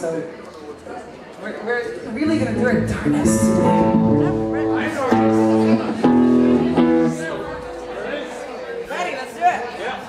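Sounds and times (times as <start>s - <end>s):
electric guitar chords: 2.1s - 8.8s.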